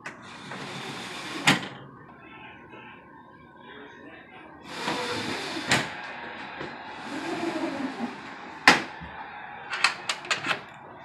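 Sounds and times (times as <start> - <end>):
screen door sliding: 0.1 - 1.8, 4.7 - 6.0, 7.0 - 8.2.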